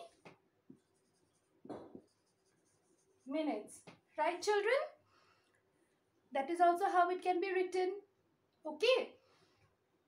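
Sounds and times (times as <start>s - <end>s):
marker writing on whiteboard: 0.0s - 4.0s.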